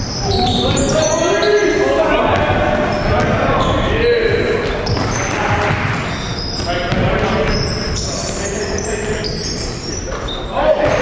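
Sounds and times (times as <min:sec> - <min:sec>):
players' voices echoing: 0:00.0 - 0:11.0
basketball bouncing on wooden floor: 0:04.8 - 0:07.6.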